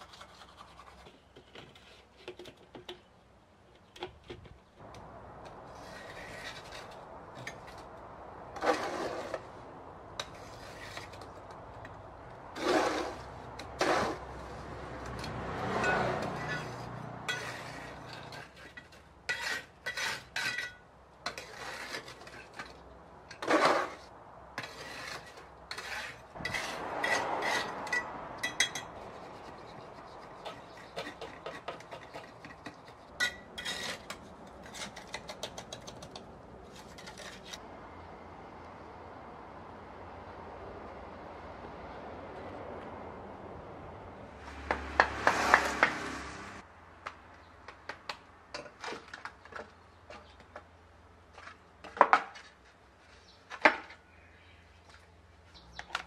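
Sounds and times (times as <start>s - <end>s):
trowel scraping mortar: 5.7s - 7.9s, 8.5s - 9.5s, 10.2s - 11.5s, 12.5s - 37.6s.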